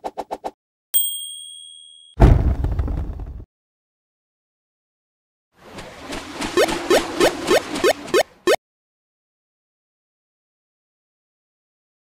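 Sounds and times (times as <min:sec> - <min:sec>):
bright bell ding: 0:01.0 - 0:02.2.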